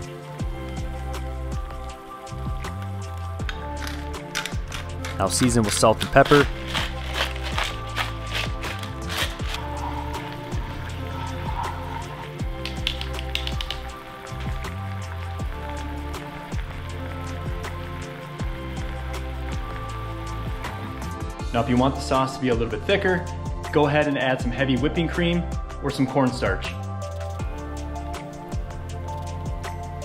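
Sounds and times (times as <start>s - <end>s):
sauce sizzling in a frying pan: 0.0s - 21.3s
lo-fi music with bass beat: 0.0s - 30.0s.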